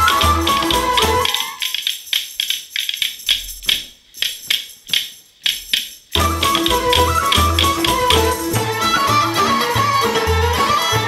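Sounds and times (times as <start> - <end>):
folk dance music: 0.0 - 3.0, 3.7 - 11.0
sharp percussion strikes: 0.0 - 11.0.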